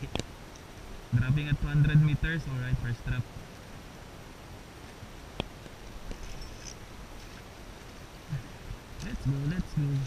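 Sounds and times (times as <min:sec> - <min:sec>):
wind: 0:00.0 - 0:10.0.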